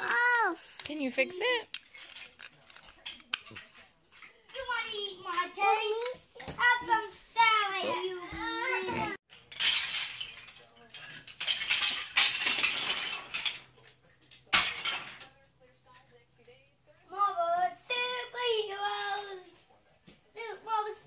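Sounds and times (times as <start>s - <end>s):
plastic blocks clattering: 0.8s - 4.8s, 9.3s - 15.3s.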